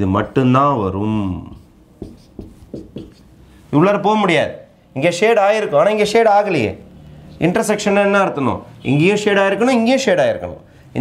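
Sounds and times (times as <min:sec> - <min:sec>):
marker pen on whiteboard: 0:01.4 - 0:03.4.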